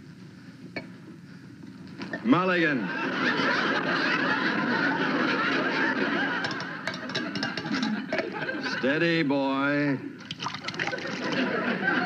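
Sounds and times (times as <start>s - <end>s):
audience laughing: 2.6s - 9.0s, 10.6s - 12.0s.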